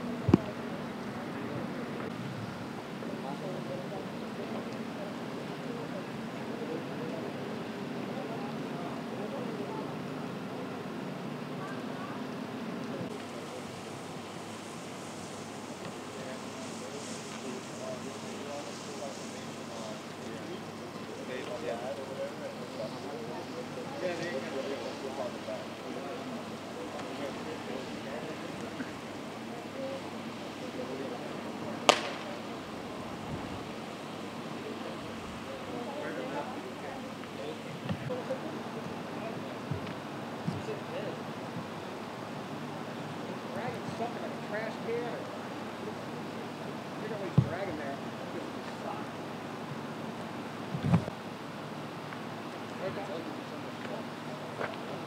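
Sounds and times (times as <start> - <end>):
distant voices talking: 0.0 - 55.0
steady hiss: 0.0 - 55.0
street noise hum: 0.0 - 55.0
flare striking crack: 13.1 - 26.0, 30.0 - 38.3.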